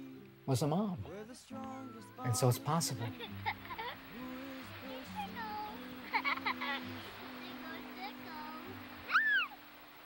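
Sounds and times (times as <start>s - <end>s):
soft music with held low notes: 0.0s - 10.0s
short high rising and falling cry: 9.1s - 9.6s.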